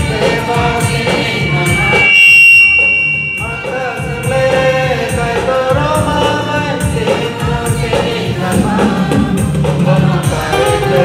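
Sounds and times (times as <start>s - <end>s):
choir singing a hymn: 0.0s - 2.2s, 3.6s - 11.0s
loud high-pitched tone: 0.0s - 6.8s.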